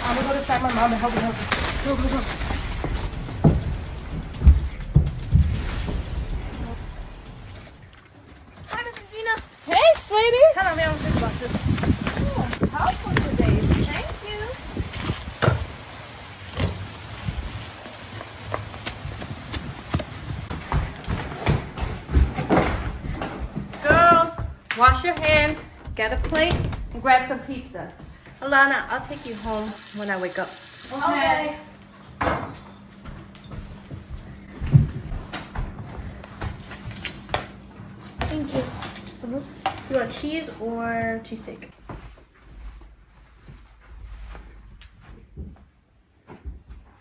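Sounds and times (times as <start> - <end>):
footsteps on wet pavement: 16.5 - 20.8.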